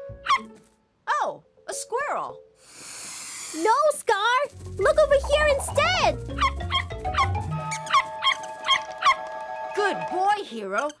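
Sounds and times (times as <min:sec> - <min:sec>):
background music: 0:00.0 - 0:10.8
cartoon dog yipping: 0:00.2 - 0:00.5, 0:05.2 - 0:09.2.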